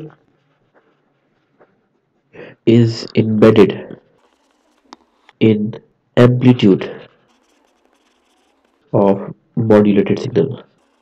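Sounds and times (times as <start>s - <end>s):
stylus scratching on tablet: 0.0s - 2.4s, 3.5s - 5.5s, 6.3s - 9.2s, 9.8s - 11.0s
person speaking: 2.4s - 4.0s, 5.3s - 7.1s, 8.9s - 10.8s.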